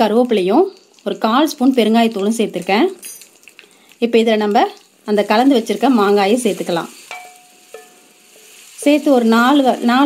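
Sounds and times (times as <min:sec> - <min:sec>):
hot oil sizzling in a pan: 0:00.0 - 0:10.0.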